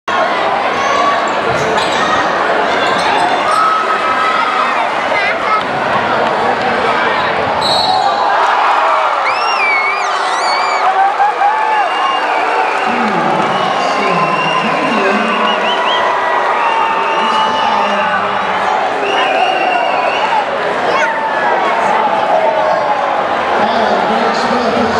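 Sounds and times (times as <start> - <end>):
crowd shouting: 0.1 - 24.9.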